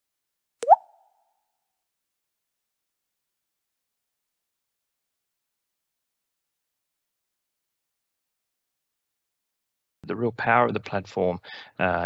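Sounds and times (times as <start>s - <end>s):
quick rising plop: 0.6s - 0.8s.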